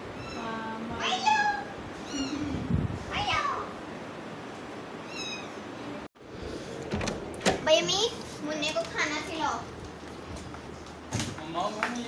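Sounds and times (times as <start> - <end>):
kitten meowing: 1.3 - 2.5, 5.0 - 5.6.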